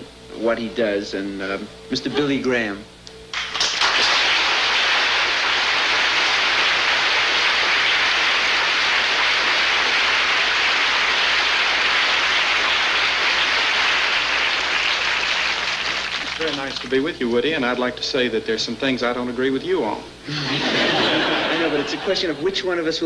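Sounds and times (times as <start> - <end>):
audience applauding: 3.3 - 17.1.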